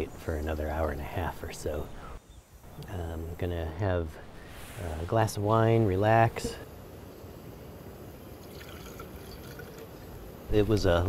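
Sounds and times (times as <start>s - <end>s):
wine trickling into a metal cup: 8.3s - 10.2s.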